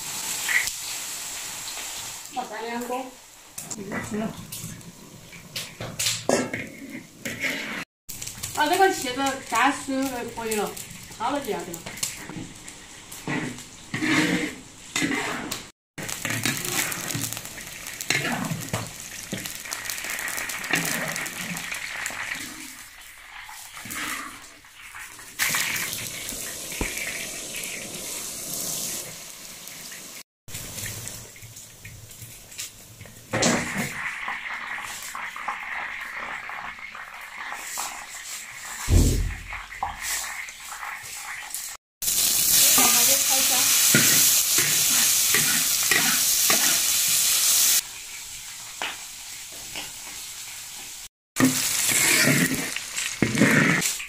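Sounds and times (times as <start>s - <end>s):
food sizzling in hot oil: 0.0s - 54.0s
wire strainer scraping a wok: 6.3s - 7.9s, 13.2s - 17.3s, 51.4s - 54.0s.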